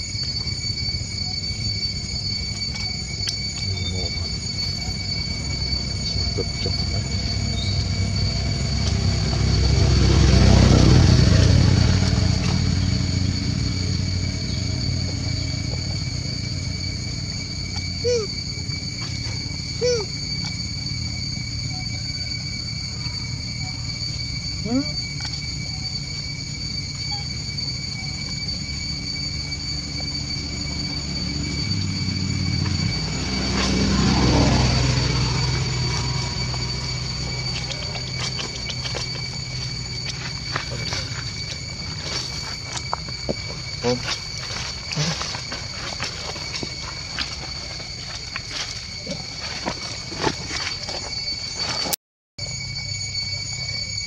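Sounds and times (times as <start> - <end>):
high whine: 0.0 - 54.0.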